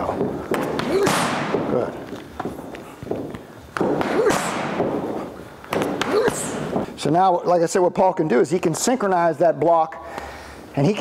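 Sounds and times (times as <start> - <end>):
boxing gloves smacking mitts: 0.0 - 6.9.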